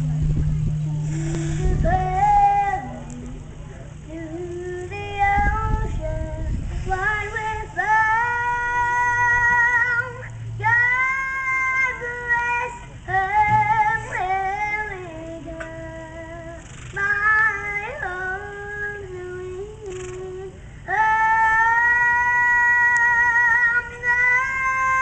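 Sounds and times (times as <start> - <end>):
girl singing: 0.4 - 3.4, 4.0 - 25.0.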